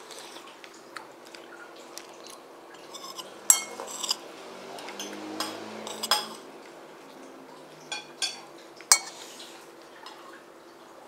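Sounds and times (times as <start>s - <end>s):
metal spoon clinking on plate: 2.9s - 4.2s, 4.9s - 6.4s, 7.9s - 9.2s.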